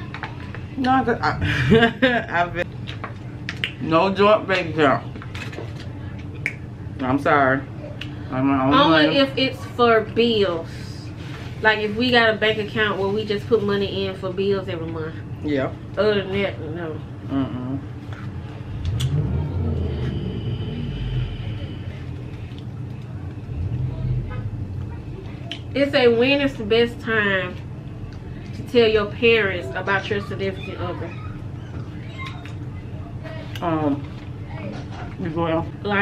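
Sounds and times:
low background hum: 0.0 - 36.0
vehicle engine rumble: 17.3 - 29.4.

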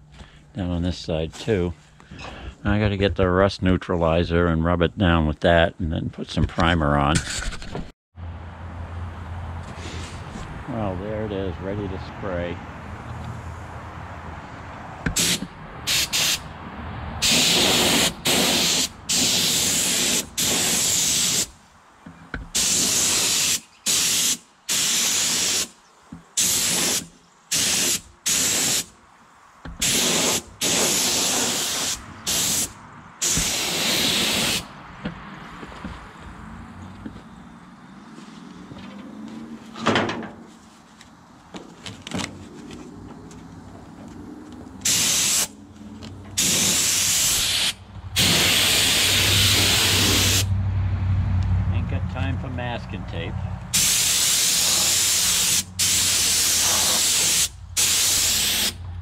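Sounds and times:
spray gun hissing: 15.1 - 16.5, 17.2 - 21.5, 22.5 - 25.7, 26.3 - 28.9, 29.7 - 34.7, 44.8 - 45.6, 46.4 - 50.5, 53.7 - 58.8.

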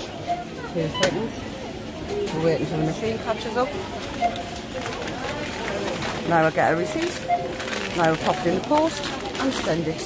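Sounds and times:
faint indistinct voices: 0.0 - 10.0
shop murmur: 0.0 - 10.0.

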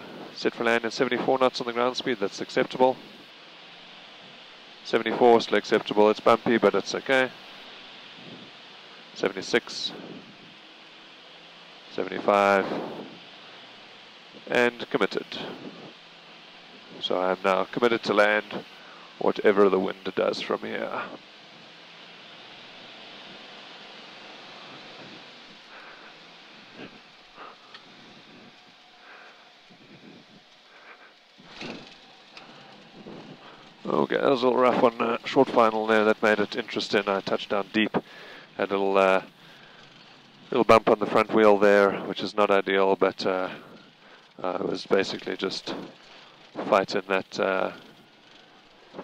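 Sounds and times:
rushing airflow: 0.0 - 0.6, 6.2 - 41.0
faint low hum: 0.0 - 49.0
light aircraft in flight: 0.0 - 49.0.

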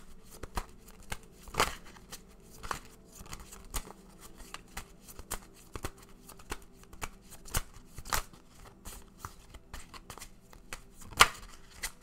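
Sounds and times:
cards being shuffled: 0.0 - 12.0
cards slapping: 0.0 - 12.0.

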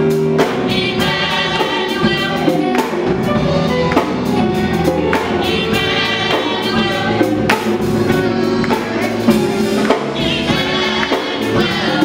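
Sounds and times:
band with drums and guitar: 0.0 - 12.0
choir singing gospel: 0.0 - 12.0
drum and cymbal strikes: 0.0 - 12.0.

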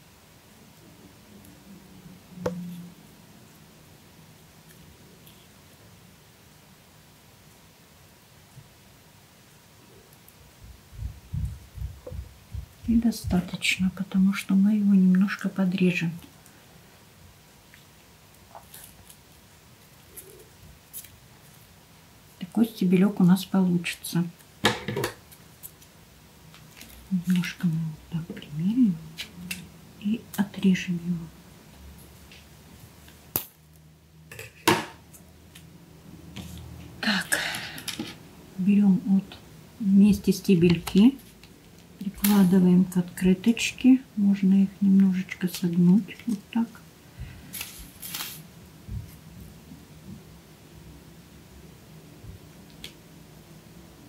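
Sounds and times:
quiet room hum: 0.0 - 54.0
soft low bumps: 10.6 - 13.5
tape rustling: 25.3 - 27.6, 47.5 - 48.4
paper and wire rustling: 47.5 - 48.4.

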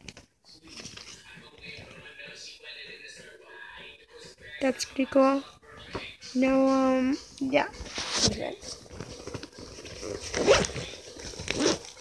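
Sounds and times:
zipper being pulled: 9.1 - 12.0.

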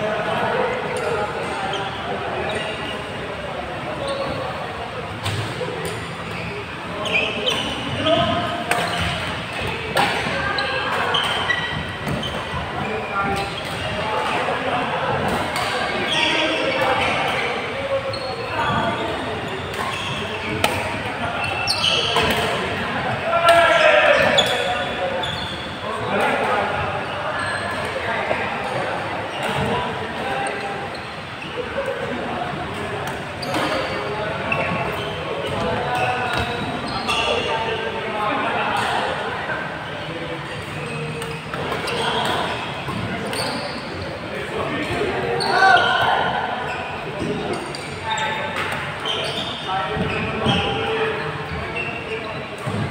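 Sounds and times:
players' voices: 0.0 - 52.9
shoe squeaks on court floor: 0.9 - 3.1, 3.9 - 14.5, 15.5 - 22.8, 23.4 - 32.0, 33.0 - 37.8, 39.9 - 52.9.

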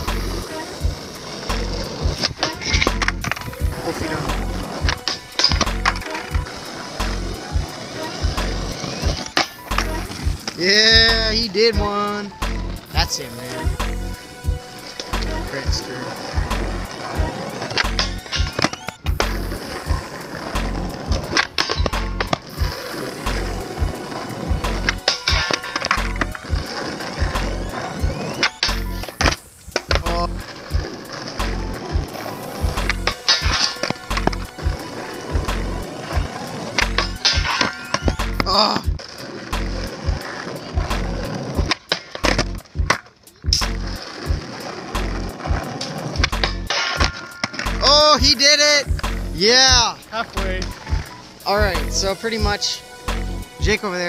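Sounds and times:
skateboard sliding on metal rail: 0.0 - 10.7, 12.4 - 47.9
skateboard clacks: 0.0 - 12.8, 14.9 - 51.4
background music with beat: 0.0 - 54.0
skateboard wheels rolling: 0.0 - 54.0.

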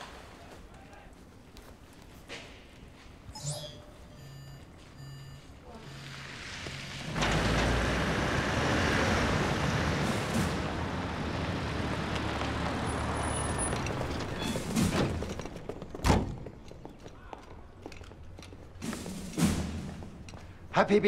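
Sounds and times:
vehicle engine and tyres: 4.1 - 21.0.

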